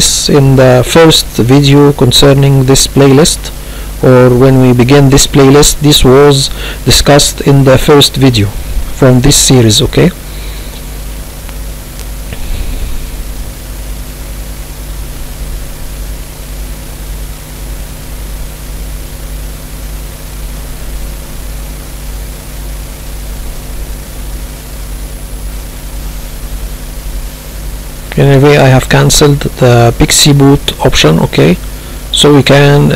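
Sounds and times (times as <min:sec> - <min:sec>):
low electrical hum: 0:00.0 - 0:32.9
steady hiss: 0:00.0 - 0:32.9.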